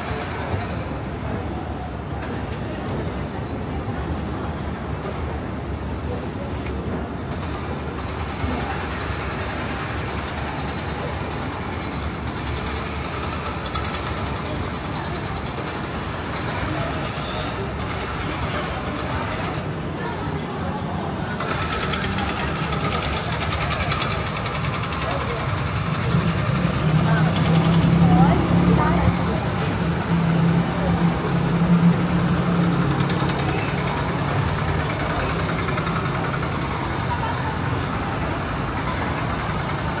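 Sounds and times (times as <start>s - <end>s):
passers-by talking: 0.0s - 40.0s
road traffic hum: 0.0s - 40.0s.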